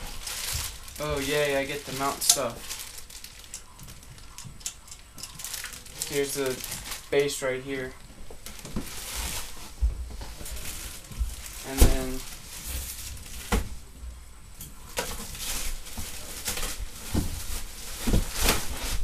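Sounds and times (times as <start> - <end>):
plastic wrapping rustling: 0.0 - 19.0
cardboard box knocks and thumps: 18.0 - 19.0.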